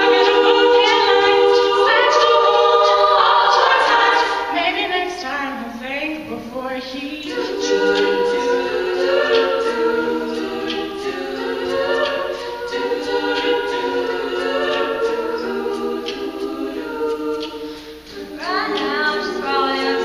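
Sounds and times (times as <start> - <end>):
women singing in harmony: 0.0 - 20.0.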